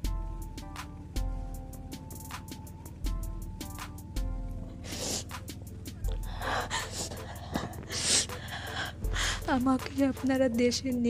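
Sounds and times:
sharp gasping breaths: 4.8 - 5.5, 6.1 - 9.5
woman crying: 6.2 - 9.8.

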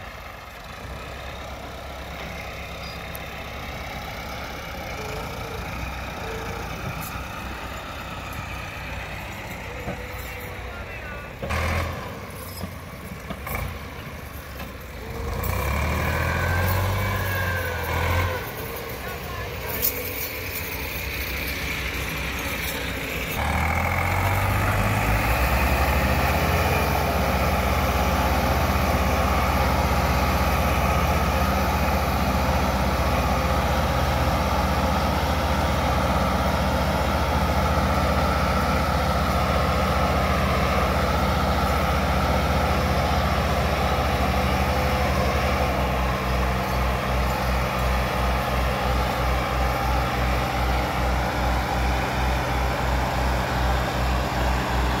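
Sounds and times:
tractor diesel engines labouring: 0.0 - 55.0.

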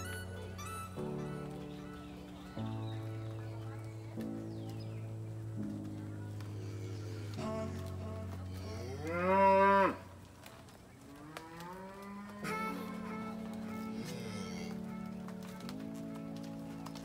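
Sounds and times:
background music: 0.0 - 10.0, 12.4 - 17.0
cow mooing: 8.6 - 10.0, 11.2 - 15.1.

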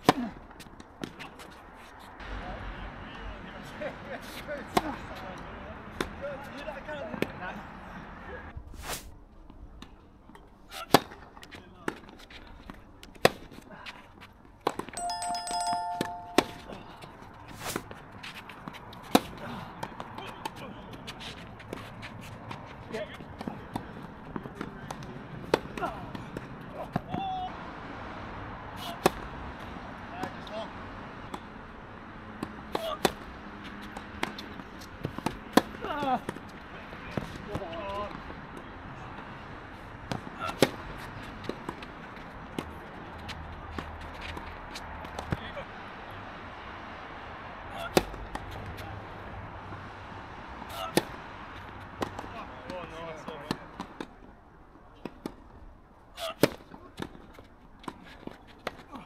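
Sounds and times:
short held tone: 15.0 - 17.0
tennis balls struck by rackets: 18.6 - 20.6, 23.3 - 27.2, 32.4 - 36.4, 50.7 - 51.2.

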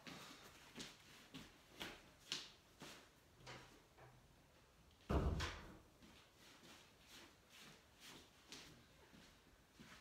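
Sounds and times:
footsteps in socks on wooden floor: 0.0 - 3.8, 5.9 - 10.0.

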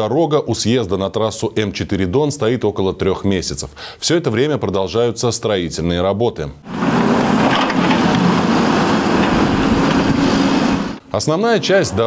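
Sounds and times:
rumble of machine noise: 6.7 - 11.1
diesel engines droning: 6.7 - 12.0.

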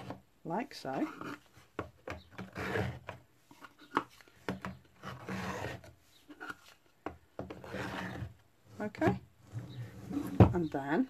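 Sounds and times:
wood scraping against wood: 0.0 - 11.0.

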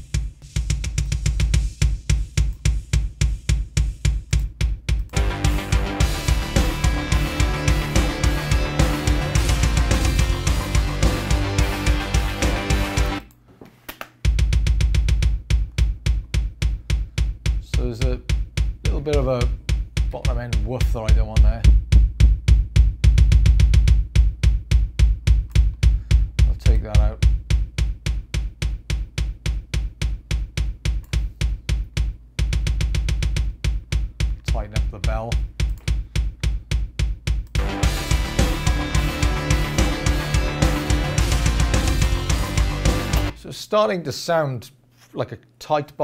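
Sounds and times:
kick drum hits: 0.0 - 12.0, 14.3 - 43.4
guitar mix: 0.0 - 13.4, 14.2 - 43.4.

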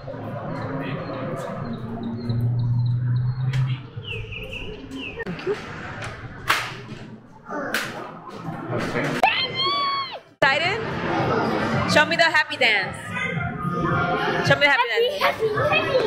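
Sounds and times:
birds chirping: 0.0 - 5.6.

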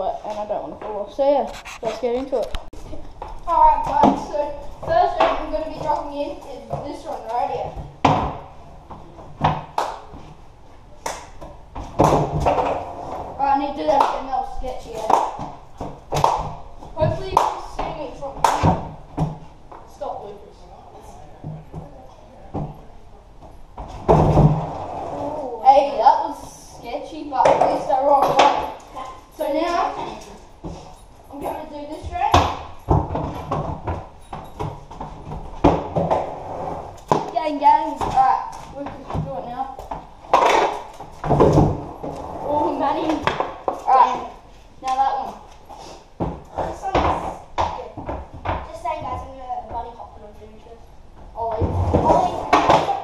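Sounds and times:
skateboard clacking on concrete: 40.3 - 41.6.

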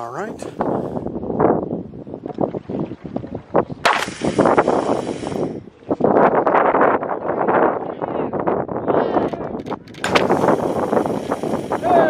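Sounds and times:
wind buffeting microphone: 0.0 - 12.0
bottle rocket launch pop: 3.8 - 4.6, 10.0 - 10.4
high hiss of escaping pressure: 4.0 - 5.6, 10.2 - 12.0.

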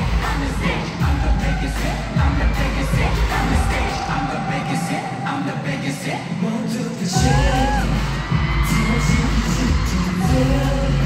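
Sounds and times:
heavy bass beat: 0.0 - 4.5, 7.1 - 11.0
loud pop concert music: 0.0 - 11.0.

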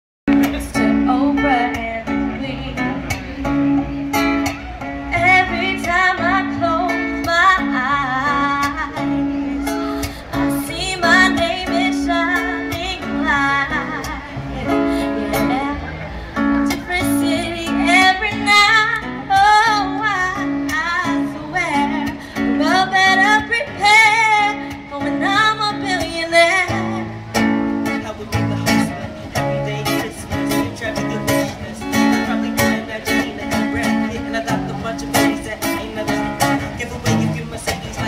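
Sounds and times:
acoustic guitar chords: 0.3 - 38.0
person singing: 16.6 - 38.0.

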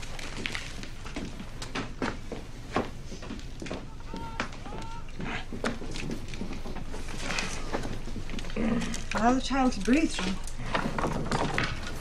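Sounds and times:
rustling: 0.0 - 12.0.

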